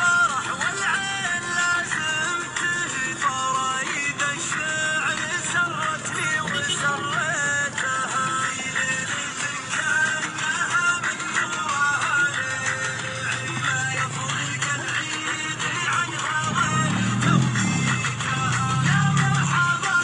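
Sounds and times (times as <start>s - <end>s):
busy background melody: 0.0s - 20.0s.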